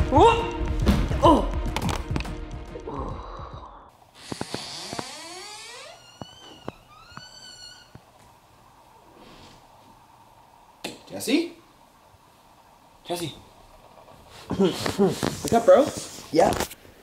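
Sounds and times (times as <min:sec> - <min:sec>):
faint steady hum: 0:03.6 - 0:17.0.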